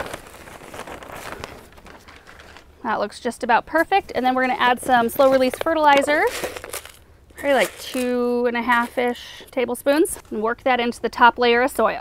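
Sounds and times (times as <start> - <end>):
soil pouring from plastic bag: 5.2 - 9.0.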